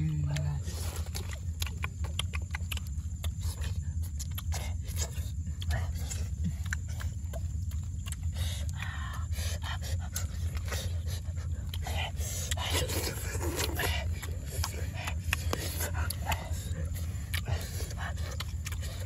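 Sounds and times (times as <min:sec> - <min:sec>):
chewing and lip smacking: 0:00.0 - 0:19.0
low rumble: 0:00.0 - 0:19.0.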